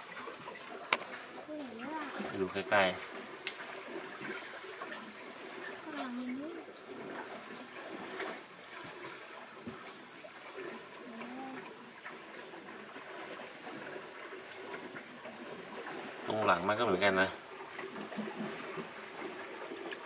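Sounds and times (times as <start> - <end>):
high-pitched insect chorus: 0.0 - 20.0.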